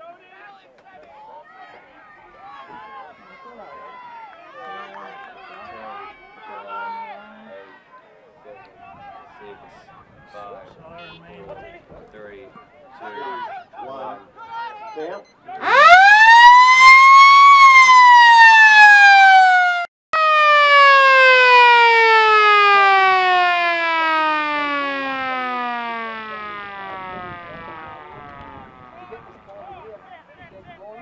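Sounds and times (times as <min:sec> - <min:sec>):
motor-driven siren wailing: 0:15.6 - 0:29.0.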